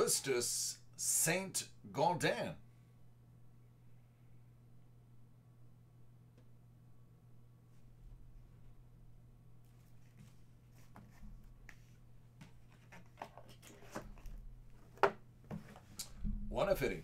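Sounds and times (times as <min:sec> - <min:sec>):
low hum: 0:02.6 - 0:09.8, 0:16.0 - 0:17.0
items and boxes being handled: 0:09.6 - 0:16.0.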